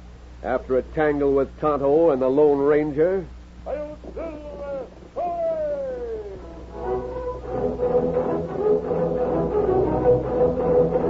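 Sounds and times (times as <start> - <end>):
man shouting calls: 3.6 - 6.7.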